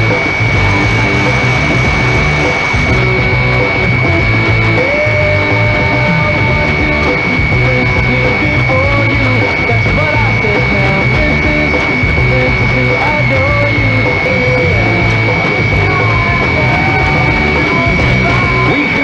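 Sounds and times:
rock song on am radio: 0:00.0 - 0:19.0
steady high whistle: 0:00.0 - 0:19.0.

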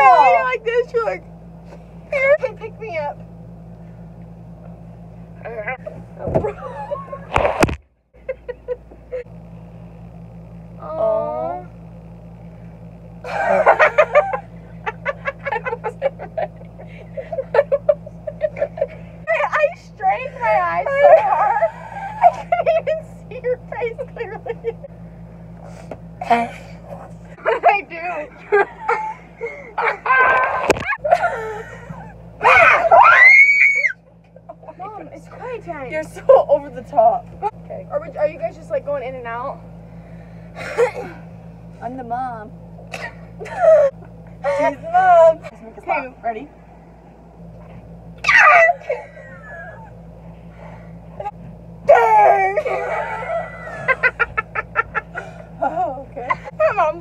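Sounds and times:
young women laughing: 0:06.4 - 0:07.3, 0:08.2 - 0:09.3, 0:13.2 - 0:24.9, 0:27.4 - 0:34.8, 0:40.6 - 0:41.3, 0:42.9 - 0:45.3, 0:48.3 - 0:50.0, 0:51.1 - 0:57.0.

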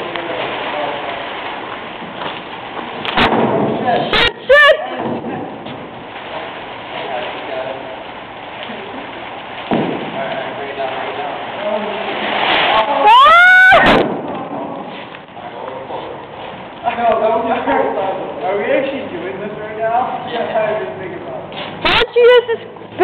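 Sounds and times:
plastic tarp rustling: 0:00.0 - 0:23.0.

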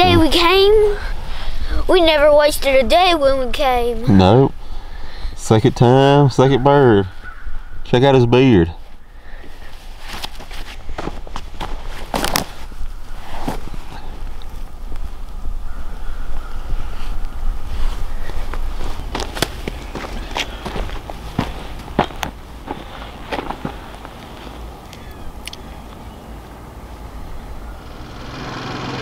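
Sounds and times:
footsteps crunching on dirt and grass: 0:08.8 - 0:14.2, 0:17.7 - 0:25.2
rustles and clicks of movement: 0:08.8 - 0:15.5, 0:16.8 - 0:26.1
wind rumble on microphone: 0:12.7 - 0:28.3.

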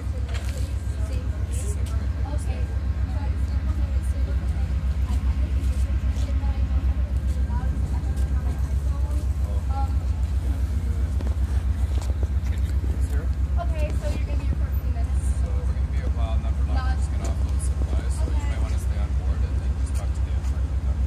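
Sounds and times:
faint voices of people: 0:00.0 - 0:21.0
idling diesel locomotive rumble: 0:00.0 - 0:21.0.

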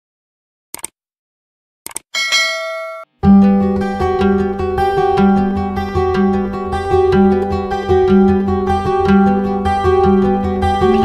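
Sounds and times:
bell chime ringing: 0:02.2 - 0:03.2.

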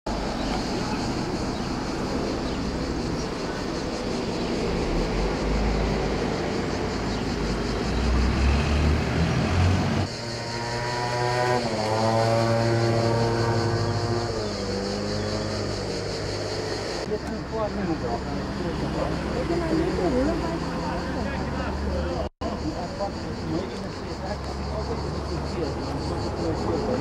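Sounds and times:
vehicle engine shifting gears: 0:00.1 - 0:17.5
distant traffic: 0:00.1 - 0:27.0
wind: 0:00.1 - 0:27.0.

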